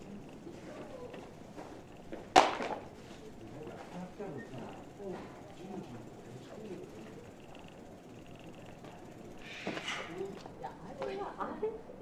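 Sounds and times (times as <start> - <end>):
faint distant voices: 0.0 - 2.1.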